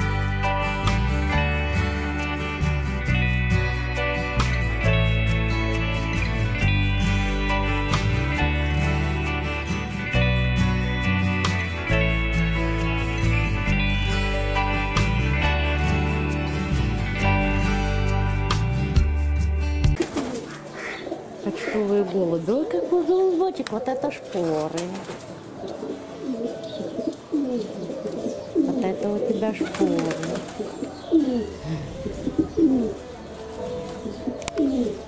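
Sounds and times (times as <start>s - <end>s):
background music: 0.0s - 35.0s
pigeons cooing softly: 20.0s - 35.0s.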